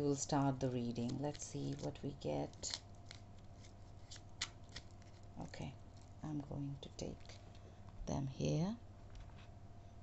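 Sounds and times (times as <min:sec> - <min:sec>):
shuffling deck of cards: 0:02.6 - 0:05.4.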